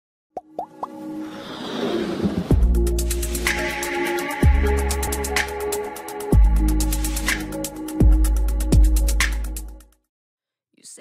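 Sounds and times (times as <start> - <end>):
electronic music riser: 1.0 - 7.8.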